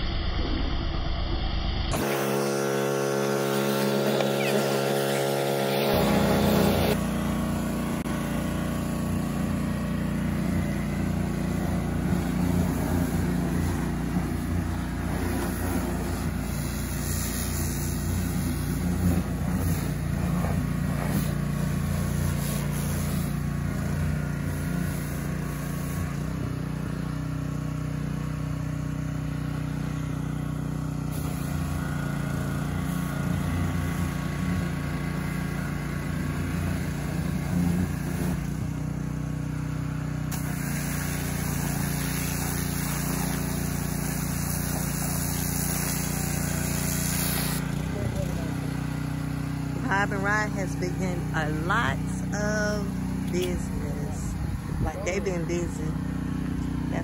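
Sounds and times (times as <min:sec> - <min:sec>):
small petrol engine running: 0:01.9 - 0:57.0
water spraying: 0:02.0 - 0:27.0, 0:31.0 - 0:38.7, 0:40.3 - 0:57.0.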